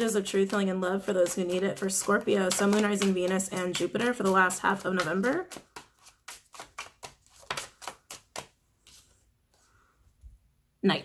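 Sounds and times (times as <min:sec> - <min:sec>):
cards shuffling with slaps: 0:00.0 - 0:09.6
cards handled faintly: 0:01.2 - 0:09.7.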